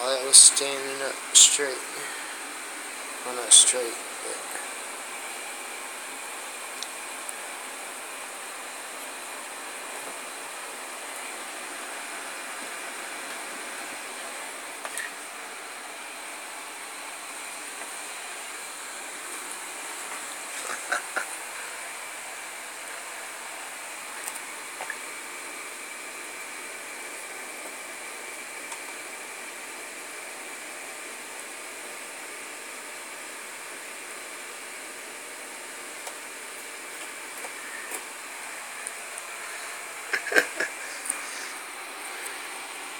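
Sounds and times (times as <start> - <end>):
steady hiss: 0.0 - 31.6, 33.4 - 42.9.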